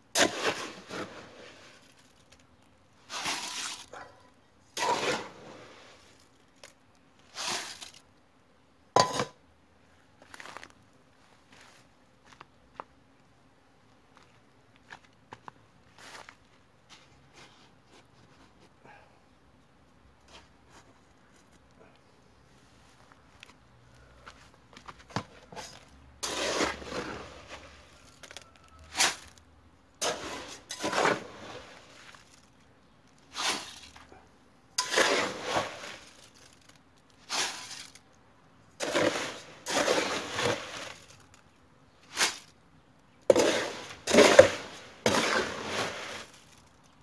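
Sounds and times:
gravelly concrete rattling pours: 0.1s - 4.0s, 4.8s - 8.1s, 25.1s - 34.2s, 34.8s - 38.1s, 38.8s - 42.6s, 43.3s - 47.0s.

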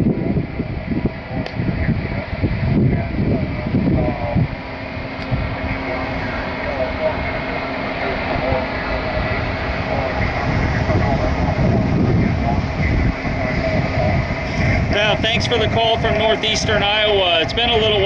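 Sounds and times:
radio hiss and rumble: 0.0s - 18.0s
steady low tone: 0.0s - 18.0s
faint garbled radio voices: 0.2s - 18.0s.

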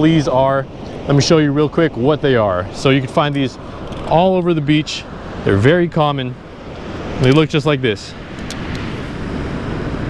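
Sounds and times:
surf on a beach: 0.0s - 10.0s
wind rumbling on microphone: 0.0s - 10.0s.

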